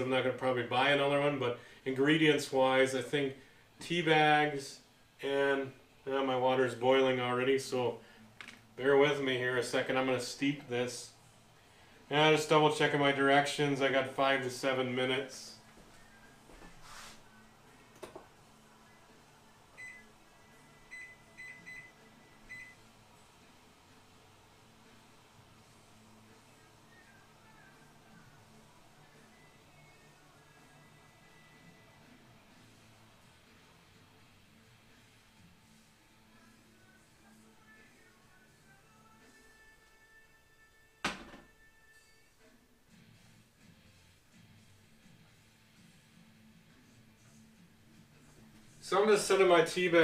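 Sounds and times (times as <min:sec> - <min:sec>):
faint background music: 0:00.0 - 0:50.0
microwave keypad beeps: 0:19.8 - 0:20.1, 0:20.9 - 0:22.8.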